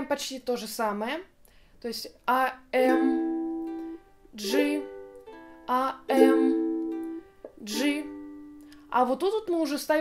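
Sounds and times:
ukulele chords strummed: 0:02.8 - 0:09.7.

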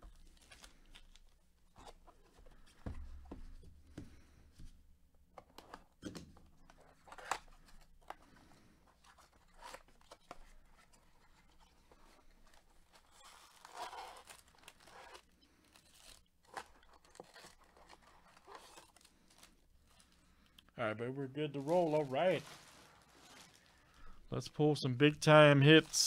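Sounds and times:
cardboard tearing and rustling: 0:12.4 - 0:20.2, 0:21.6 - 0:23.7.

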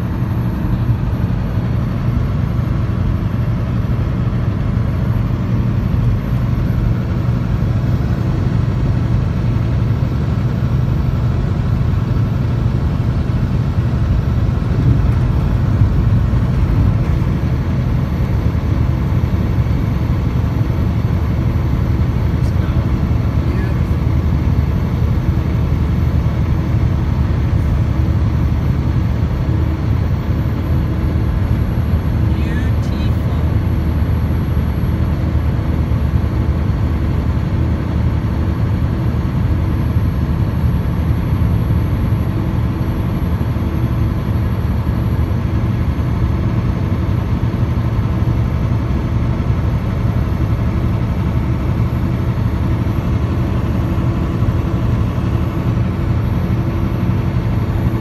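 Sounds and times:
truck diesel engine drone: 0:00.0 - 0:58.0
tyre and road noise: 0:13.1 - 0:22.7.

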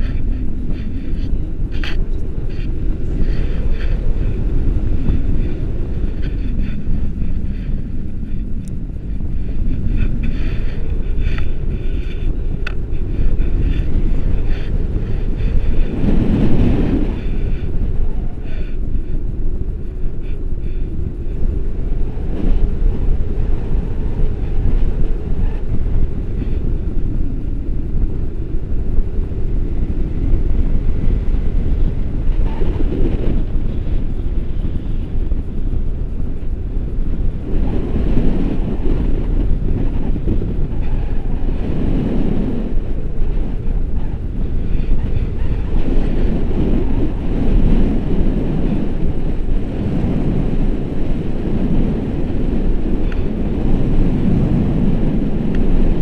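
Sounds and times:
wind buffeting microphone: 0:00.0 - 0:56.0.

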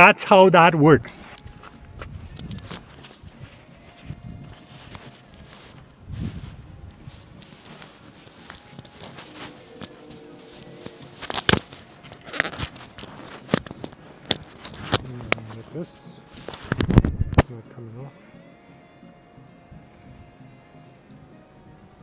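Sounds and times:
fabric and fingers rubbing microphone: 0:03.2 - 0:13.0.

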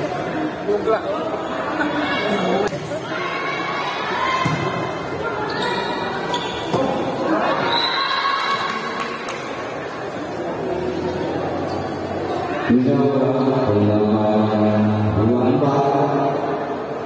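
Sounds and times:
crowd shouting and cheering: 0:01.4 - 0:10.0.

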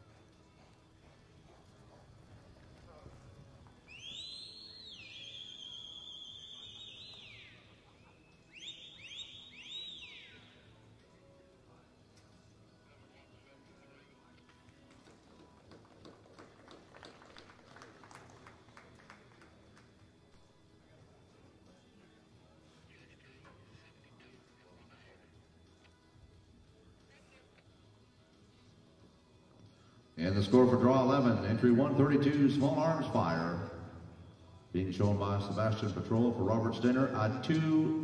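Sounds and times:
person whistling loudly: 0:03.9 - 0:07.6.

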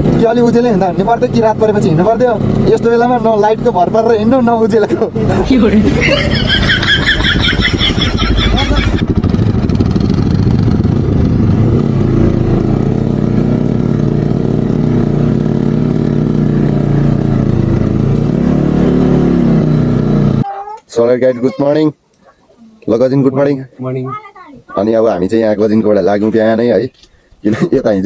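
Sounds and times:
motorcycle engine revving: 0:00.0 - 0:20.4
road and wind noise: 0:00.0 - 0:20.5.

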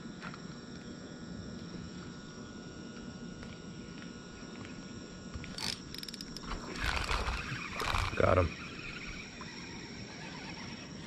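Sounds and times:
night insects chirring: 0:00.0 - 0:11.0.

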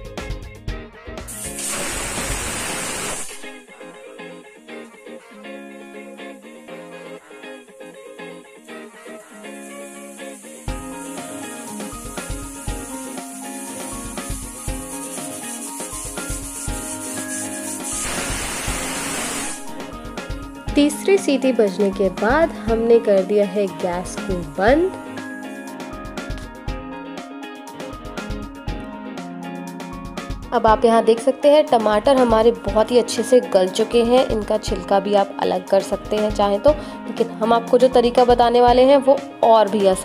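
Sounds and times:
instrumental background music: 0:00.0 - 0:40.0
pressure cooker whistling: 0:09.7 - 0:19.8.

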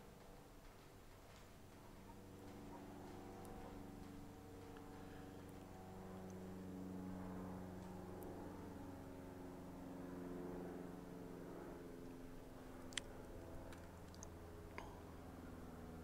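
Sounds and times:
faint engine-like hum: 0:00.0 - 0:16.0.

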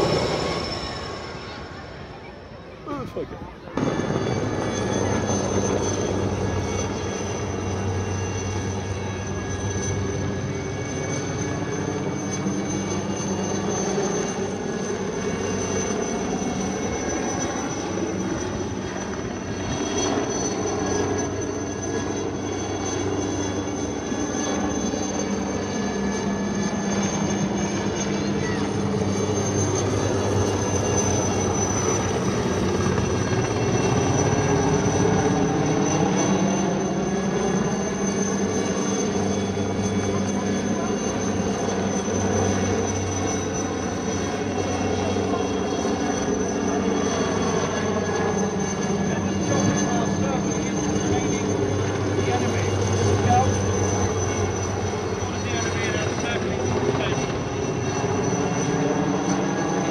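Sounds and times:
helicopter rotor drone: 0:00.0 - 0:59.9
high turbine whine: 0:00.0 - 0:59.9.

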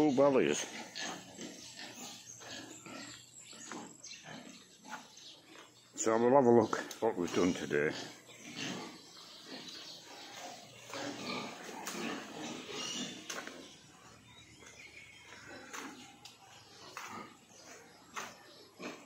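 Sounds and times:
pigs grunting: 0:00.0 - 0:19.0.

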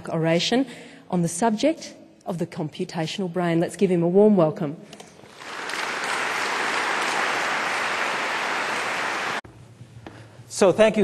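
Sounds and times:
audience applauding: 0:05.3 - 0:09.4.

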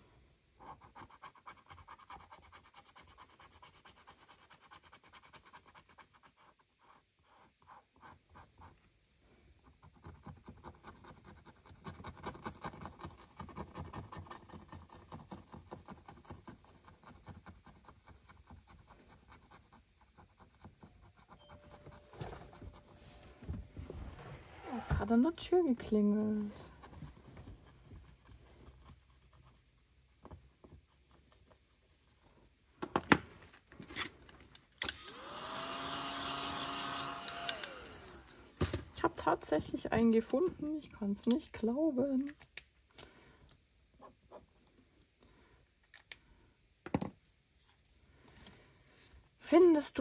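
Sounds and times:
tool scratching a scratch card: 0:00.6 - 0:08.8, 0:09.6 - 0:23.0, 0:25.9 - 0:29.9.

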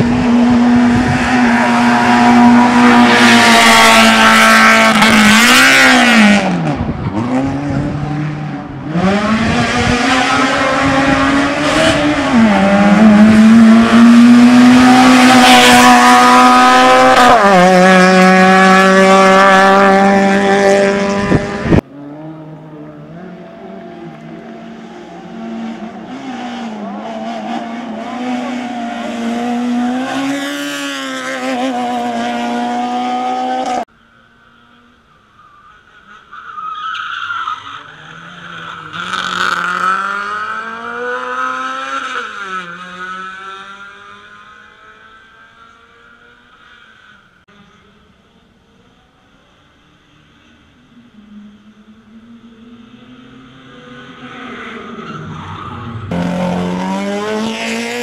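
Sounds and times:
race car engine revving: 0:00.0 - 0:33.9, 0:38.0 - 0:46.4, 0:56.0 - 0:58.0.

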